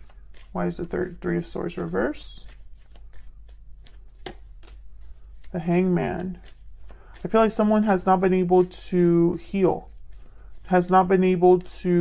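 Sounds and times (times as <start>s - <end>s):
cards clicking and snapping: 2.4s - 5.5s.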